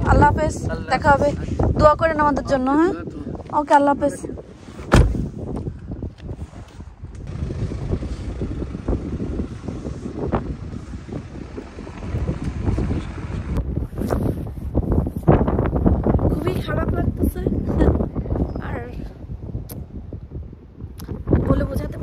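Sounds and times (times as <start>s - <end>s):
wind buffeting microphone: 0.0s - 22.0s
car engine running: 7.3s - 13.6s.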